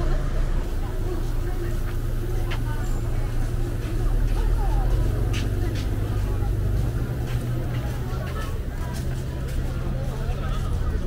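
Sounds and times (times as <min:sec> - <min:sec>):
pedestrians chattering: 0:00.0 - 0:11.0
road traffic rumble: 0:00.0 - 0:11.0.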